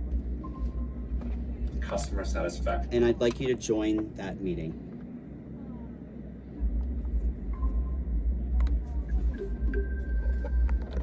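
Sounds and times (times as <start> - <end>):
low rumble: 4.7 - 11.0.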